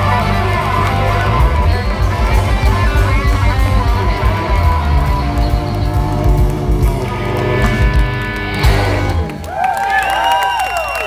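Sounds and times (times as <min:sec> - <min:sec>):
overdriven electric guitars: 0:00.0 - 0:09.5
blues band playing: 0:00.0 - 0:09.6.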